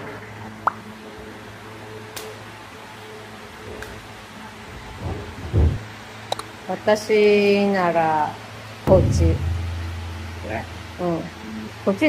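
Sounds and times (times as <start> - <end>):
low room hum: 7.0 - 12.0.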